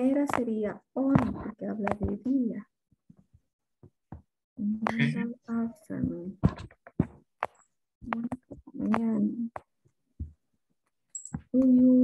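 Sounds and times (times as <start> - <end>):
person's voice murmuring: 4.6 - 5.4.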